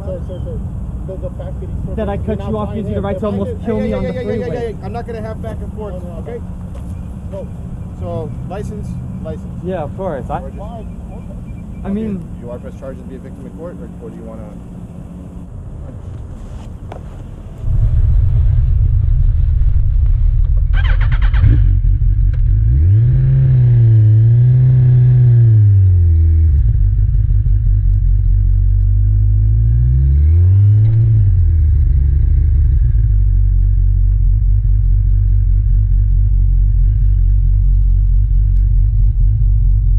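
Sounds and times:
wind and road noise rumble: 0.0s - 39.9s
motorcycle engine revving: 17.6s - 39.9s.

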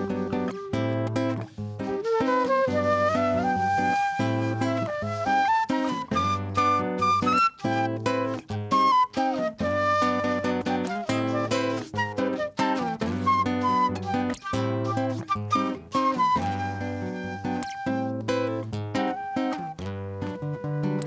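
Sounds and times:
flute playing a melody: 0.0s - 21.0s
strummed acoustic guitar: 0.0s - 21.0s.

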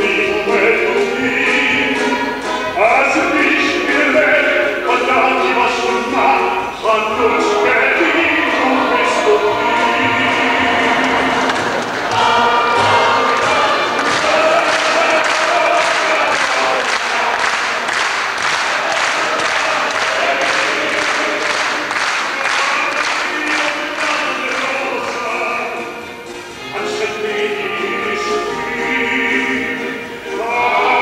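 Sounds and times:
choir singing folk song: 0.0s - 31.0s
rhythmic hand clapping: 10.2s - 26.6s.

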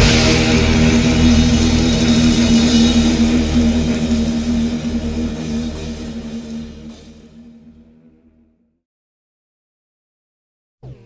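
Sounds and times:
rock band held chord droning: 0.0s - 8.4s.

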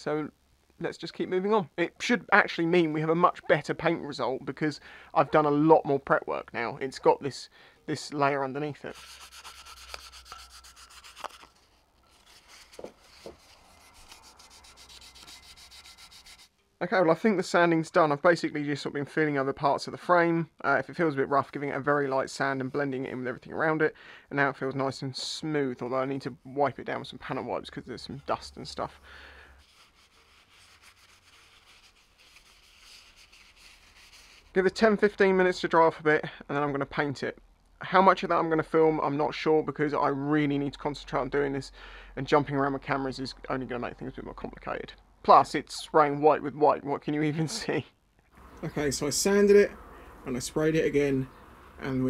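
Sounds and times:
sandpaper rubbing on metal: 8.8s - 16.5s, 29.6s - 34.5s.

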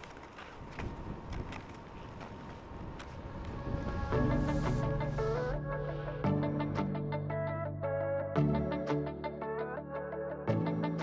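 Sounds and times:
footsteps crunching in snow: 0.0s - 4.7s.

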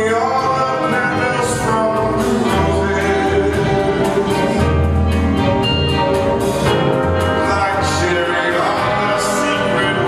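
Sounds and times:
man singing jazz: 0.0s - 5.2s, 6.9s - 10.0s
big band playing: 0.0s - 10.0s.

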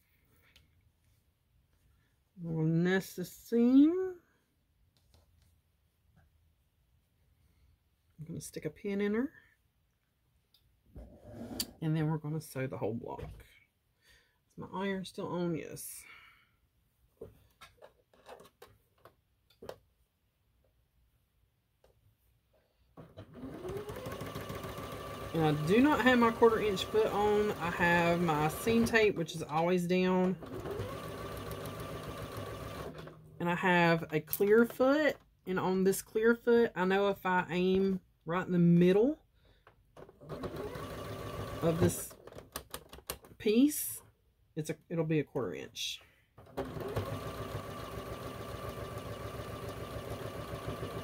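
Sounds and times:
electric sewing machine stitching: 23.0s - 33.3s, 40.0s - 42.2s, 46.4s - 51.0s.

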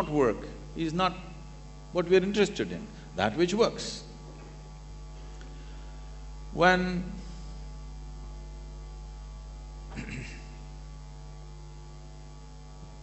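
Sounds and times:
electrical mains hum: 0.0s - 13.0s.

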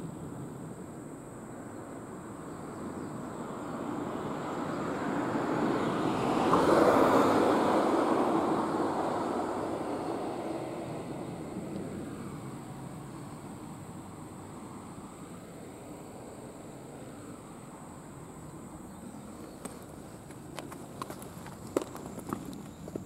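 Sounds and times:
vehicle passing by: 2.8s - 23.0s.

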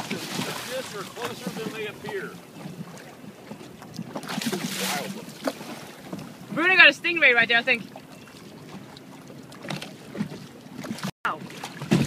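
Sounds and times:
water lapping around boat: 0.0s - 12.0s.

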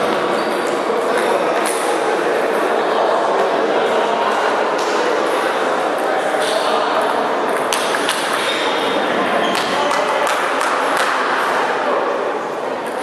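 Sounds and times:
voices in a hall: 0.0s - 13.0s
table tennis ball hits: 7.5s - 8.7s.

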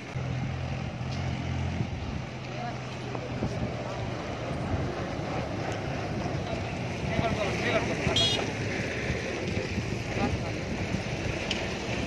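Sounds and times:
wind on microphone: 0.0s - 2.4s, 3.2s - 12.0s
low engine hum: 0.0s - 12.0s
passing vehicle traffic: 0.0s - 12.0s.

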